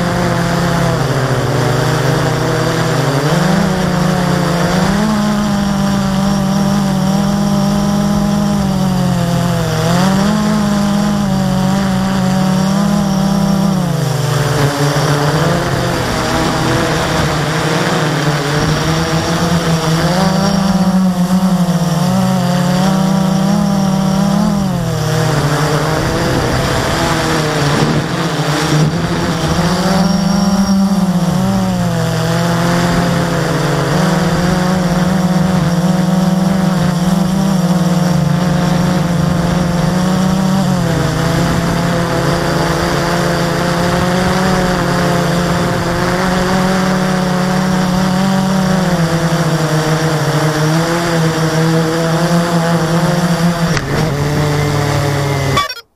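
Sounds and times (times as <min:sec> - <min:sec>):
quadcopter motors buzzing: 0:00.0 - 0:55.9.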